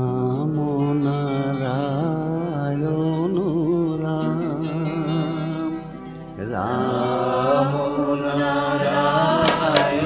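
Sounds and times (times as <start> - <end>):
person chanting: 6.4 - 10.0.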